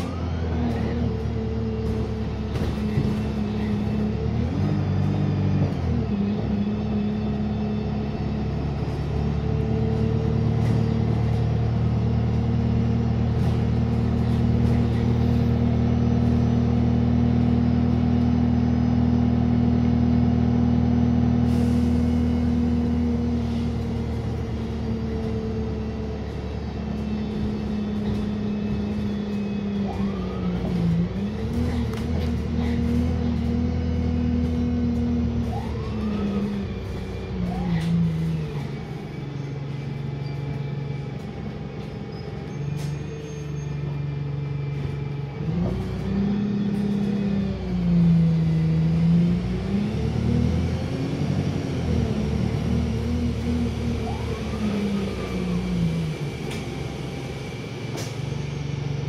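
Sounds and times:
bus engine and drivetrain: 0.0s - 59.0s.

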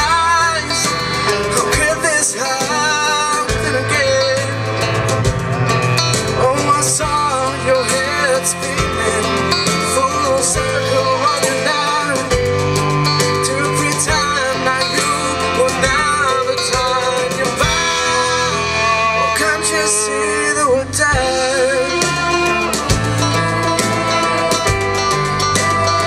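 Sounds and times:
folk-rock band playing: 0.0s - 26.0s.

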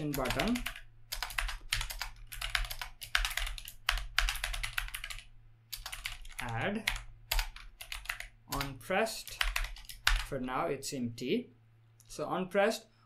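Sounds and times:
typing on computer keyboard: 0.0s - 10.3s.

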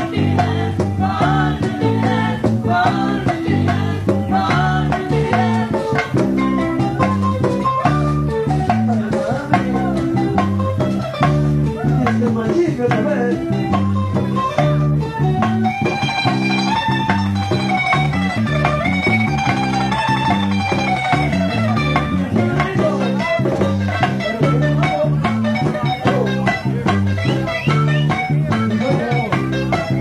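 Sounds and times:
picked lead guitar melody: 0.0s - 30.0s
stepping bass line: 0.0s - 30.0s.

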